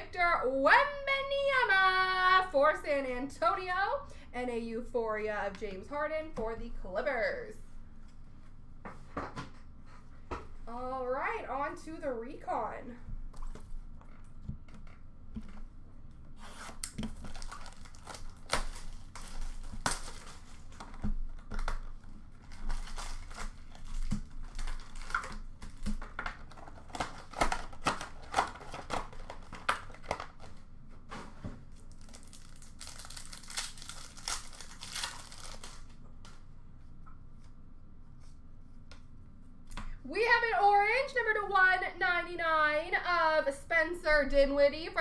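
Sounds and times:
plastic wrapping crinkling and ripping: 16.4 - 30.7, 31.7 - 36.4.

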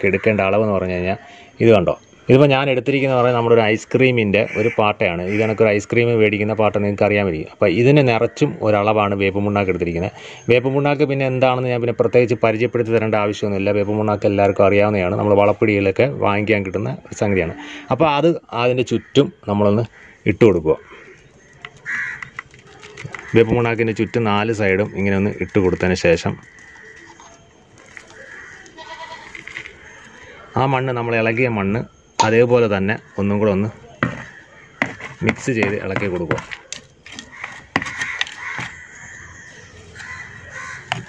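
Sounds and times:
crow cawing: 0.0 - 1.4, 4.3 - 5.8, 18.9 - 25.0, 25.6 - 30.6, 33.0 - 41.0
bird calls: 18.6 - 41.0
crumbs ticking onto soil: 20.9 - 30.3, 33.7 - 41.0.

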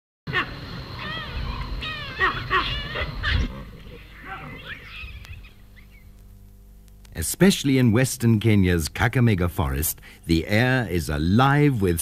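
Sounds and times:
primates calling: 0.3 - 6.2.

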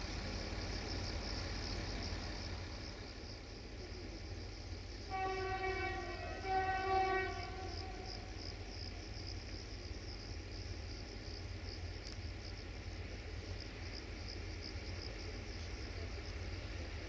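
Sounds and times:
crickets chirping: 0.0 - 17.0
locomotive horn blasts: 5.1 - 8.3.

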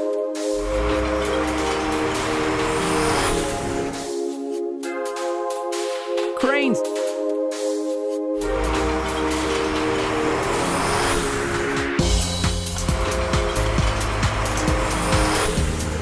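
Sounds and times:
cartoon truck driving: 0.0 - 4.2, 8.4 - 16.0
background music: 0.0 - 16.0.

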